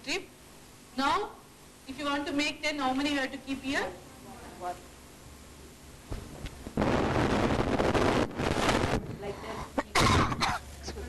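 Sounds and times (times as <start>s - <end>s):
woman coughing: 9.4s - 11.0s.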